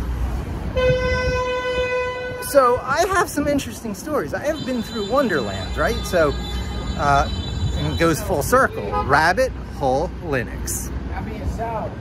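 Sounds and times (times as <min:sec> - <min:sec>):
city traffic rumble: 0:00.0 - 0:12.0
vehicle horn long note: 0:00.8 - 0:02.4, 0:04.6 - 0:07.9.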